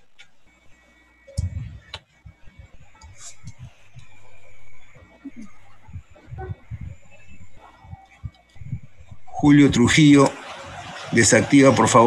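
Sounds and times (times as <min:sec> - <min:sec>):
faint steady whine: 0:00.0 - 0:12.0
microphone clicks and knocks: 0:01.4 - 0:04.3.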